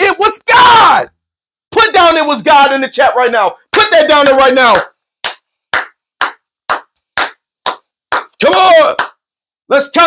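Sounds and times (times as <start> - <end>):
man clapping hands: 3.7 - 9.2.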